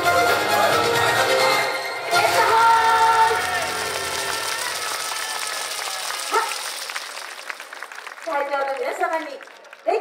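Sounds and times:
dance music: 0:00.0 - 0:04.9
audience clapping: 0:02.2 - 0:10.0.

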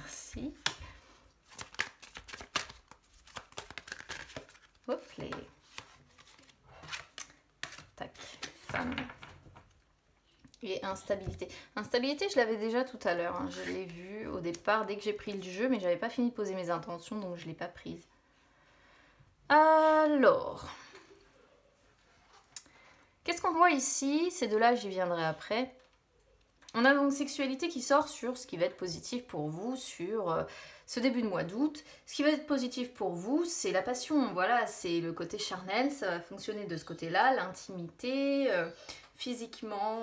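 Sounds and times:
cards shuffled and set down: 0:01.5 - 0:09.8.

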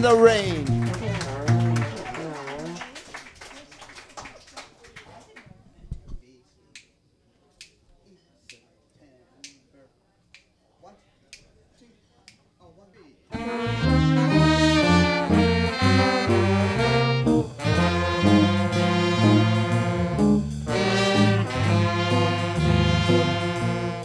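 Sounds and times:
baritone saxophone and bass: 0:00.0 - 0:02.8, 0:13.3 - 0:24.0
jazz band horns playing chords: 0:00.0 - 0:02.8, 0:13.3 - 0:24.0
finger snaps: 0:09.4 - 0:09.6, 0:10.3 - 0:10.5.

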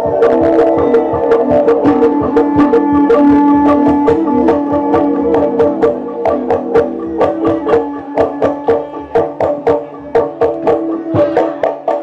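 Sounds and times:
sharp pitched struck notes: 0:00.0 - 0:12.0.

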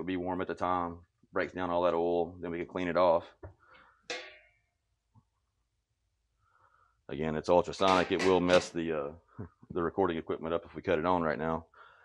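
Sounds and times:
metal lid ringing: 0:04.1 - 0:04.6, 0:07.8 - 0:08.7.

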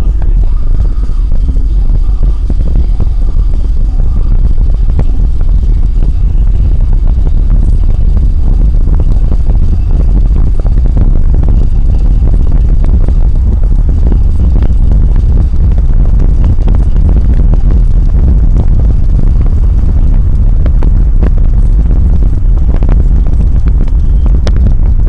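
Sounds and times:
car road and wind noise: 0:00.0 - 0:25.0.

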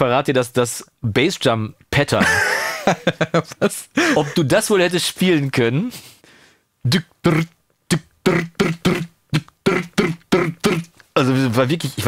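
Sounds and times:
man laughing in bursts: 0:02.2 - 0:04.5.

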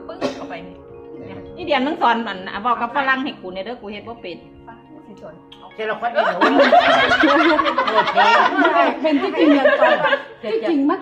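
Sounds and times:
people talking: 0:00.0 - 0:11.0
adults laughing together: 0:06.2 - 0:11.0.

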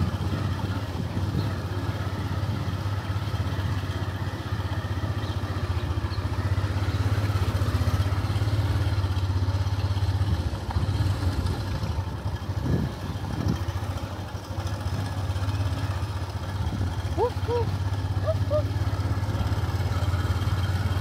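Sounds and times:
motor engine running: 0:00.0 - 0:21.0.

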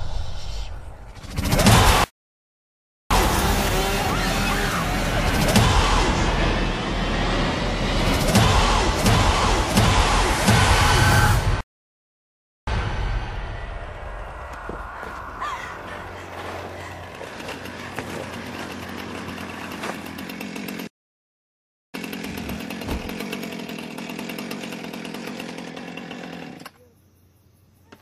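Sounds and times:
chainsaw engine running: 0:03.1 - 0:10.0, 0:16.4 - 0:20.9, 0:22.0 - 0:26.8.

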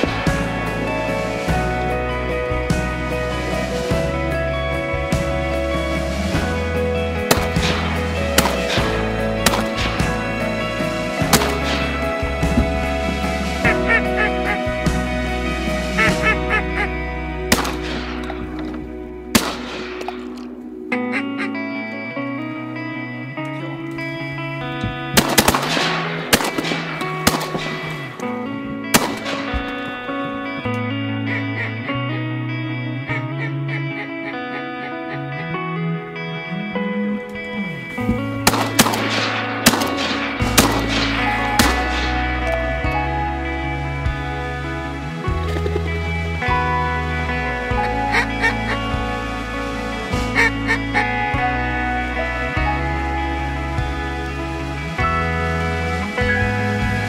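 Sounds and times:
background music with bass line: 0:00.0 - 0:57.0
shotgun blasts: 0:07.3 - 0:10.3, 0:11.2 - 0:12.0, 0:17.5 - 0:20.5, 0:25.2 - 0:28.2, 0:28.9 - 0:29.8, 0:38.4 - 0:42.3
ducks quacking: 0:11.3 - 0:18.8, 0:20.9 - 0:22.2, 0:29.0 - 0:32.3, 0:33.0 - 0:35.5, 0:47.7 - 0:52.2.

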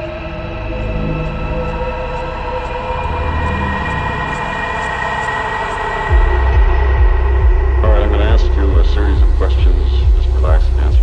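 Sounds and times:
electronic synth drone: 0:00.0 - 0:11.0
low rumble: 0:05.9 - 0:11.0.

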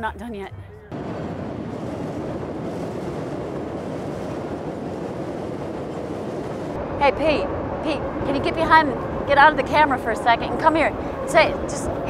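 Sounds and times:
elevated train running on steel: 0:00.9 - 0:12.0.

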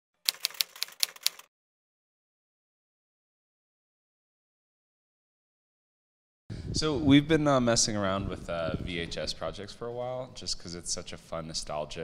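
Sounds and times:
typewriter key clicks: 0:00.3 - 0:01.5.

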